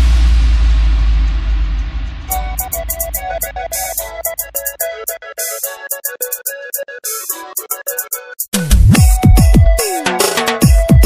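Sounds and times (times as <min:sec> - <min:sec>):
deep sub-bass boom: 0:00.0 - 0:02.7.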